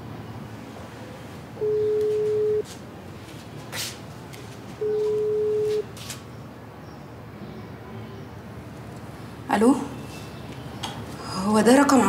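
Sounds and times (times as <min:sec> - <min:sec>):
telephone ringback tone: 0:01.6 - 0:02.6, 0:04.8 - 0:05.8.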